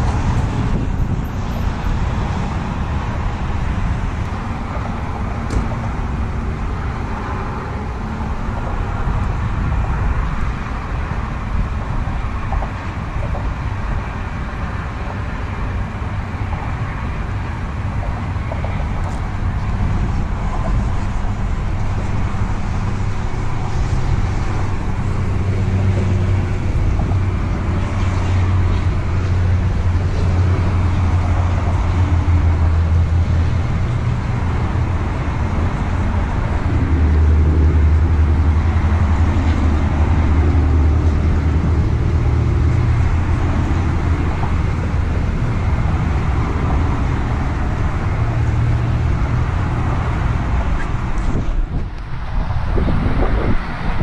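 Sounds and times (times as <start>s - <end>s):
motor traffic rumble: 0.0s - 54.0s.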